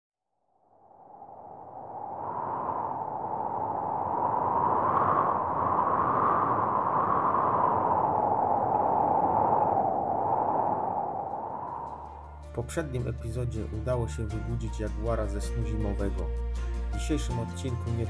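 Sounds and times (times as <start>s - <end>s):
soft rushing noise: 0.8s - 12.4s.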